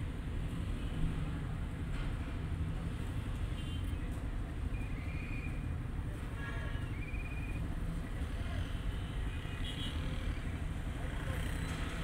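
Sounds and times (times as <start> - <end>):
vehicle engines rumbling: 0.0 - 12.0.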